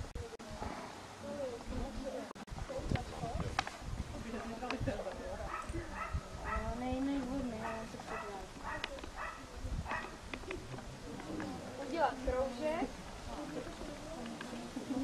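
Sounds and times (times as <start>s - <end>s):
people talking: 0.0s - 15.0s
dog barking: 5.5s - 6.7s, 7.6s - 10.2s.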